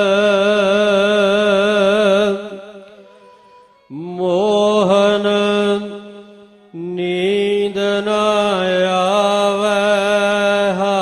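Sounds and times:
person chanting melodically: 3.8 - 11.0.

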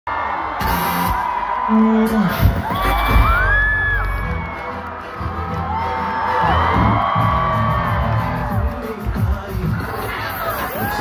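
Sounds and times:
crowd cheering and screaming: 0.1 - 11.0
loud live concert music: 0.1 - 11.0.

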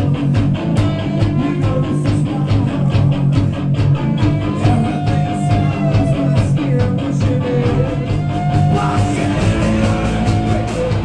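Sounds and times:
lead guitar bending notes: 0.0 - 11.0
rock band playing live: 0.0 - 11.0.

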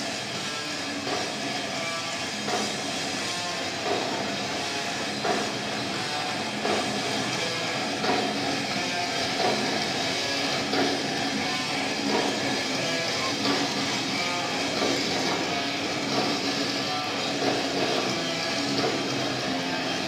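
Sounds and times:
distorted electric guitars: 0.0 - 20.0
drums: 0.0 - 20.0.

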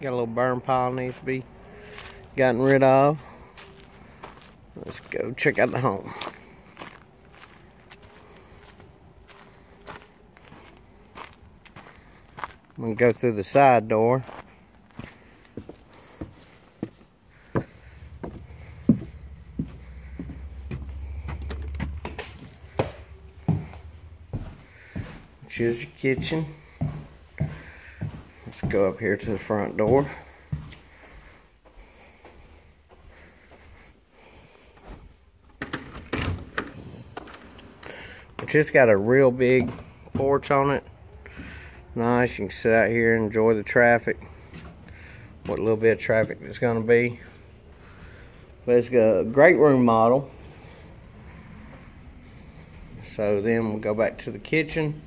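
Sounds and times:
footsteps on sandy dirt: 1.7 - 33.9, 37.9 - 40.7
faint steady hum: 14.5 - 28.6.

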